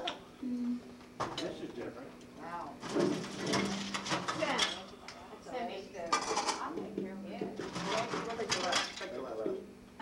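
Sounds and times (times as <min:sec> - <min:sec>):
people talking: 0:00.0 - 0:00.8, 0:05.4 - 0:09.7
steady low hum: 0:00.0 - 0:10.0.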